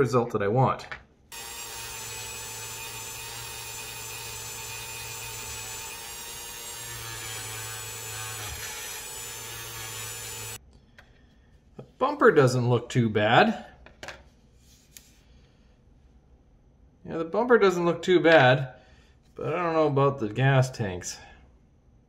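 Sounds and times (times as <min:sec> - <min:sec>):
rotary tool polishing metal: 0:01.3 - 0:10.6.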